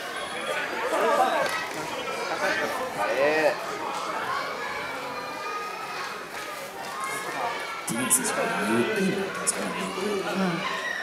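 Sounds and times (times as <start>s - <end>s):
overlapping voices calling out: 7.2s - 11.0s.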